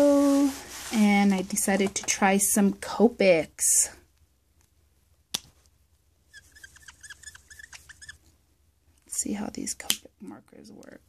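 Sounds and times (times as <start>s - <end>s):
marker tip squeaking: 6.3s - 8.2s.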